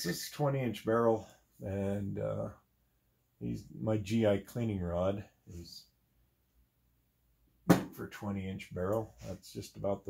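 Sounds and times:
man speaking: 0.0s - 2.6s, 3.4s - 5.9s, 7.9s - 10.0s
sharp knock: 7.7s - 8.0s.

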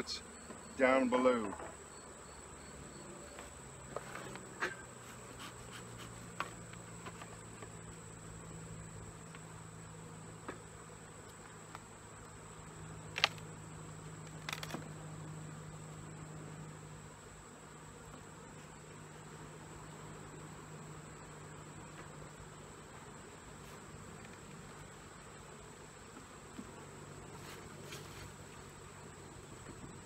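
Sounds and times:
high insect trill: 0.0s - 26.1s
bees humming: 0.0s - 30.0s.

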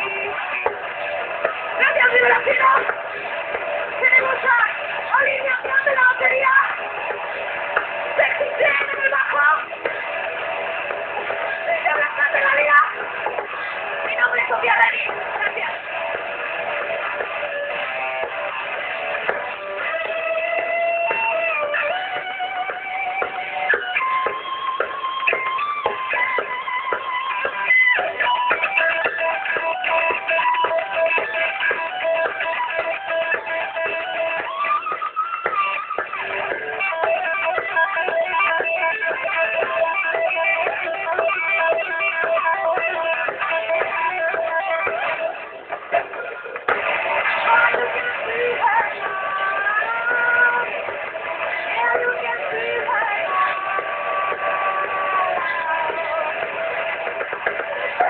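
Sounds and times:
distorted electric guitar lead: 0.0s - 58.0s
drums: 0.0s - 58.0s.

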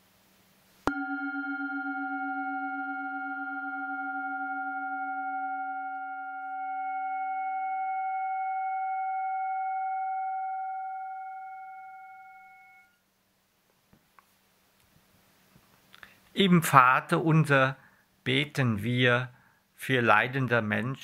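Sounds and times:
singing bowl ringing: 0.9s - 13.0s.

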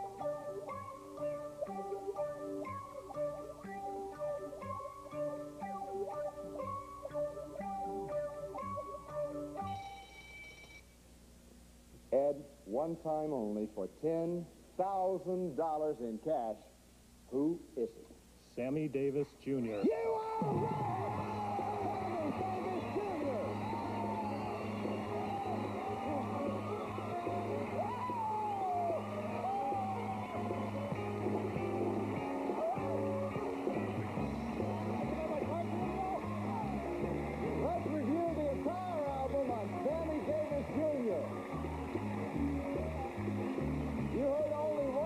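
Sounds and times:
audience cheering and applauding: 20.0s - 33.8s, 34.4s - 45.0s
band playing upbeat music: 20.2s - 45.0s.

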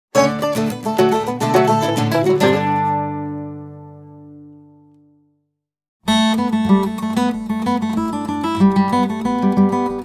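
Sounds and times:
plucked string notes: 0.1s - 5.2s.

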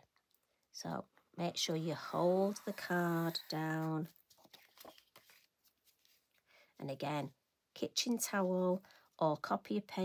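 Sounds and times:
paper and towel rustling: 2.2s - 6.4s.

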